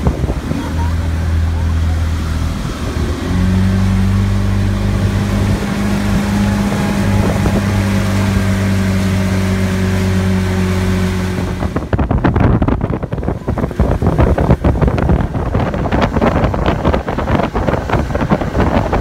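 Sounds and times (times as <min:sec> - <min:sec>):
motorboat engine running: 0:00.0 - 0:19.0
wind buffeting microphone: 0:00.0 - 0:19.0
wind rushing: 0:00.0 - 0:19.0.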